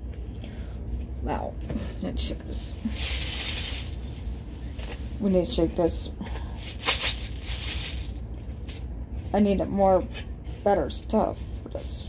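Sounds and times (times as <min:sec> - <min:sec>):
rattling rustle of shaking: 0:02.8 - 0:05.3, 0:06.4 - 0:08.8.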